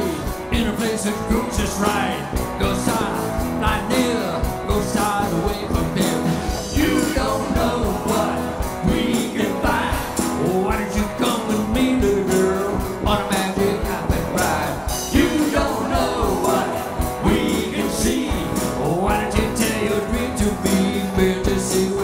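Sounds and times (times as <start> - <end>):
drum beat: 0.0 - 22.0
live rock and roll band: 0.0 - 22.0
man singing lead: 0.0 - 22.0.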